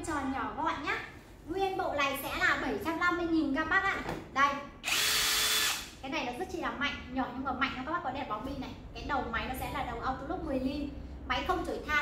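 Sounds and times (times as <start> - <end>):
cordless drill running: 4.8 - 5.9.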